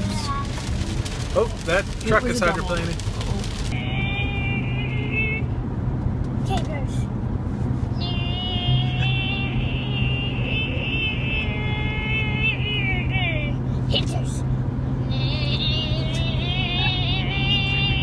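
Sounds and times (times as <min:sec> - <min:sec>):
car engine and tyres hum: 0:00.0 - 0:18.0.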